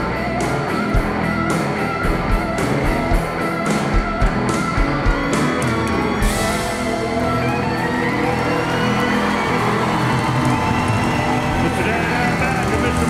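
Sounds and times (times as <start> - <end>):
live country band playing: 0.0 - 13.0
audience cheering: 5.2 - 13.0.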